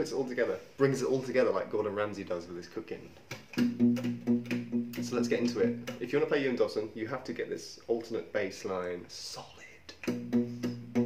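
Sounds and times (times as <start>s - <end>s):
fingerpicked acoustic guitar: 10.0s - 11.0s.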